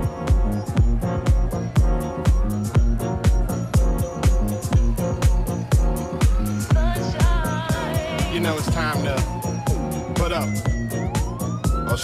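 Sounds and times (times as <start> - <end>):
kick drum: 0.0 - 11.9
disco house dance track: 0.0 - 12.0
siren-like synth tone gliding: 0.0 - 12.0.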